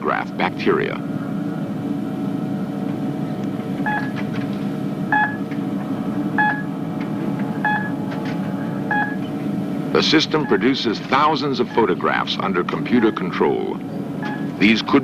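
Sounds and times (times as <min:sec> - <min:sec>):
electronic hum: 0:00.0 - 0:15.0
short beeps: 0:03.9 - 0:04.1, 0:05.1 - 0:05.4, 0:06.4 - 0:06.7, 0:07.6 - 0:08.0, 0:08.9 - 0:09.2, 0:10.4 - 0:10.6, 0:14.2 - 0:14.5.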